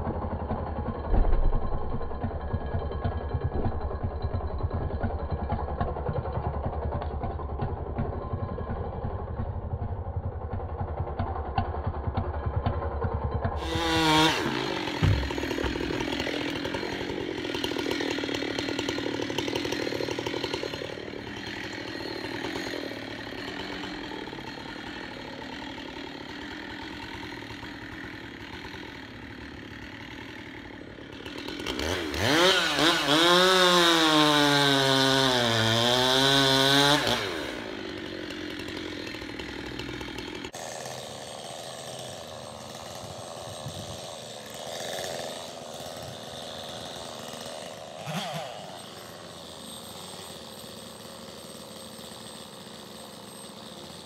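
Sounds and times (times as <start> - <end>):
chainsaw idling and cutting: 0.0 - 54.0.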